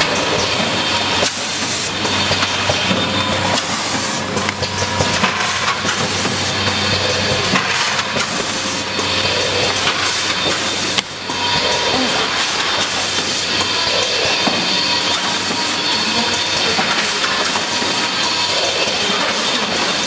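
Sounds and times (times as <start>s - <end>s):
machine clicking and clatter: 12.2s - 20.0s.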